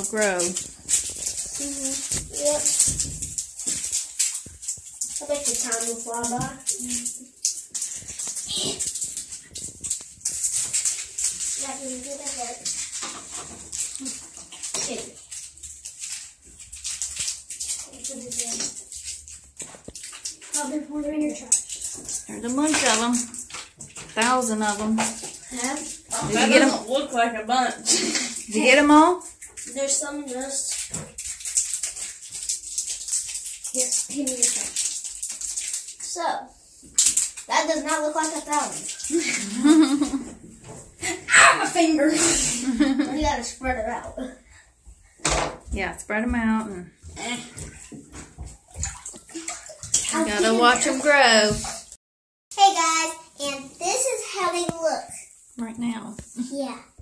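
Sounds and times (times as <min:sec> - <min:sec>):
water splashing in a bathtub: 0:00.0 - 0:57.0
child speaking: 0:01.6 - 0:02.8, 0:05.2 - 0:07.2, 0:08.5 - 0:08.8, 0:11.6 - 0:12.7, 0:14.8 - 0:15.2, 0:17.8 - 0:18.8, 0:20.5 - 0:21.7, 0:25.4 - 0:28.1, 0:29.6 - 0:30.8, 0:33.7 - 0:34.7, 0:36.0 - 0:36.6, 0:37.5 - 0:38.8, 0:41.2 - 0:44.4, 0:50.1 - 0:51.0, 0:52.6 - 0:55.3, 0:56.4 - 0:57.0.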